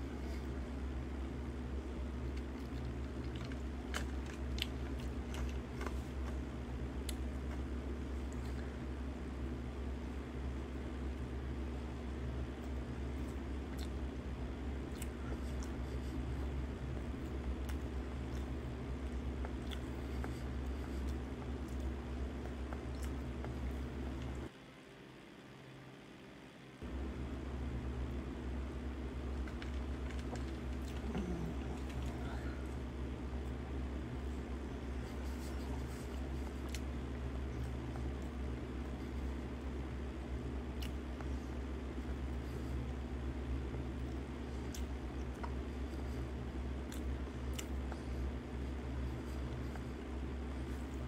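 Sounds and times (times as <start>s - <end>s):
man chewing food: 0.0s - 24.5s, 26.8s - 51.0s
steady low hum: 0.0s - 51.0s.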